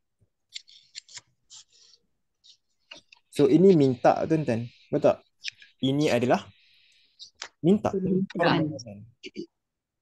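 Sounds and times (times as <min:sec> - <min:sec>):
stylus scratching on tablet screen: 0:00.4 - 0:07.9.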